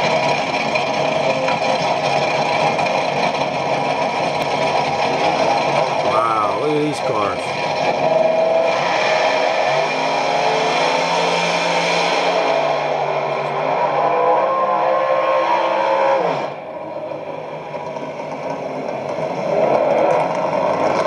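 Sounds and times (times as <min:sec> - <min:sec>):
race car engines at full throttle: 0:00.0 - 0:21.0.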